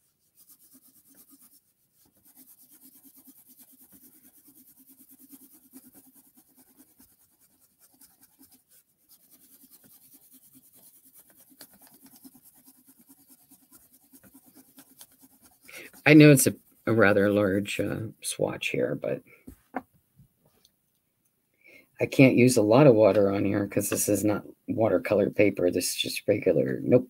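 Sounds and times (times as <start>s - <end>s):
colored pencil scratching on paper: 0.0s - 17.7s.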